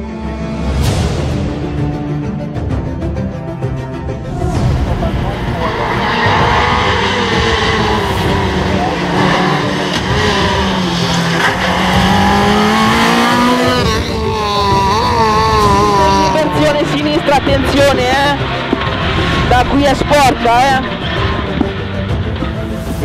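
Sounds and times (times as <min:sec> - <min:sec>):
car engine revving: 0:04.0 - 0:23.0.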